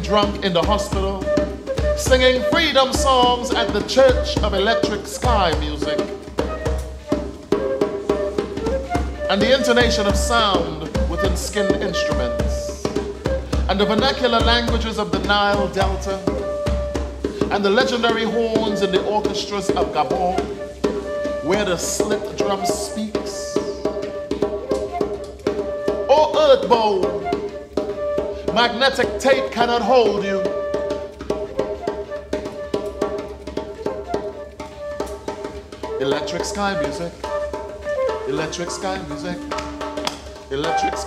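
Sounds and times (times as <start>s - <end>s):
djembe struck by hand: 0.0s - 41.0s
flute holding long notes: 0.0s - 41.0s.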